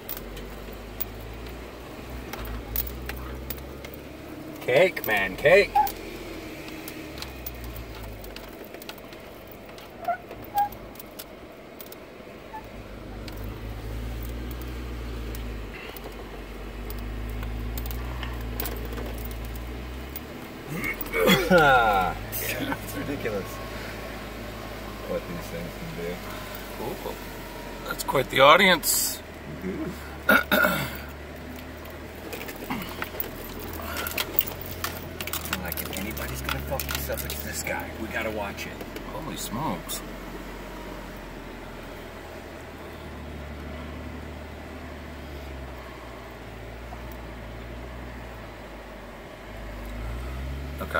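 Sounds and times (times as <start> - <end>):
engine rumble from inside cabin: 0.0 - 50.9
vehicle clicks and rattles: 0.0 - 50.9
short high squeaks: 5.1 - 6.2, 9.8 - 10.9.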